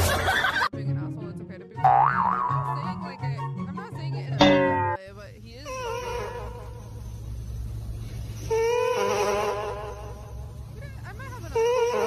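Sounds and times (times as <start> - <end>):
loud steady buzzing tone: 4.4 - 12.0.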